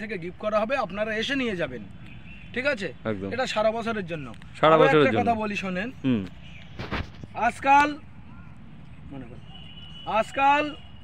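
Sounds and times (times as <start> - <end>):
man speaking: 2.6 - 6.4.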